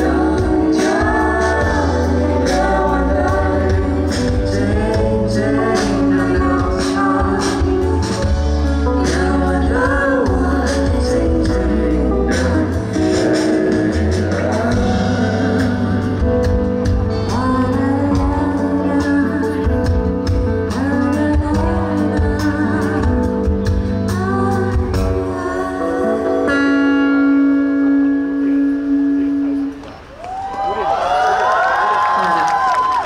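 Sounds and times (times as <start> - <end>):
live band with singers: 0.0 - 33.0
audience cheering and whooping: 30.0 - 33.0.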